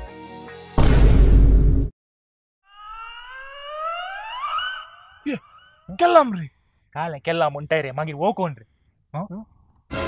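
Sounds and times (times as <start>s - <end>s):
rising wavering comic tone: 2.6s - 6.1s.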